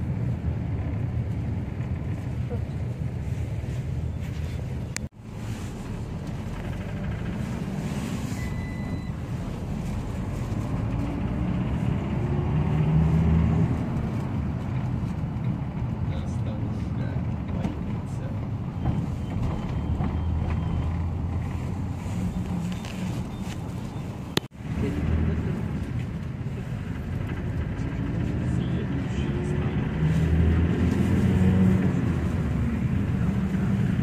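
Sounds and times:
minibus engine: 0.0 - 34.0
road rumble: 0.0 - 34.0.

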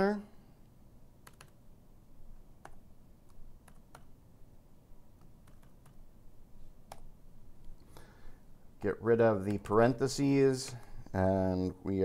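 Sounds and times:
person speaking: 0.0 - 0.5, 8.7 - 12.0
keyboard keystrokes: 1.2 - 1.6, 2.6 - 4.1, 5.2 - 6.0, 6.8 - 7.1.

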